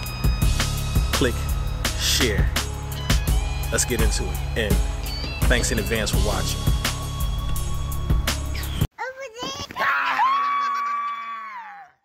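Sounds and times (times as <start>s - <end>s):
child's high scream: 9.4s - 12.0s.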